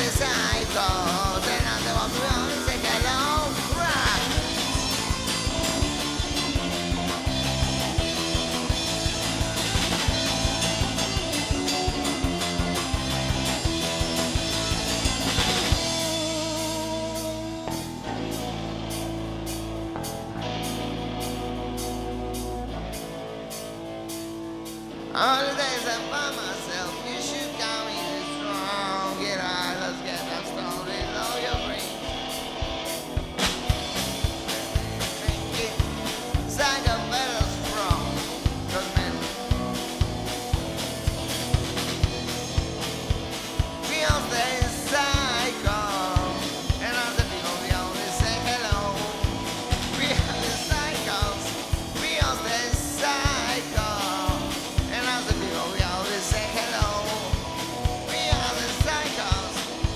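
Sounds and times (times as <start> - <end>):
person singing: 0.0 - 7.2, 25.1 - 32.3, 34.7 - 40.0, 43.6 - 59.9
bass guitar: 0.0 - 59.9
drum kit: 0.0 - 59.9
electric guitar: 0.0 - 59.9.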